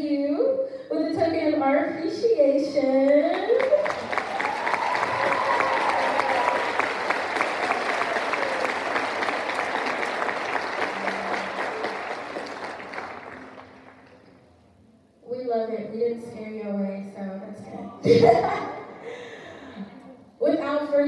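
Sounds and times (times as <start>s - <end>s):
audience applause: 3.5s - 14.3s.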